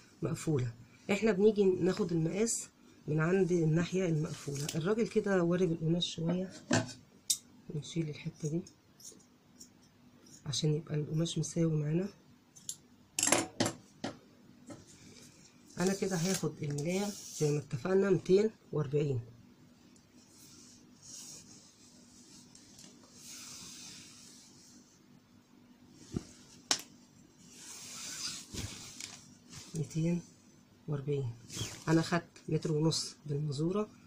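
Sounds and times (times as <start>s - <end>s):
fabric rustling and sliding: 14.7s - 17.6s, 20.2s - 25.0s, 25.9s - 30.2s, 31.4s - 32.1s.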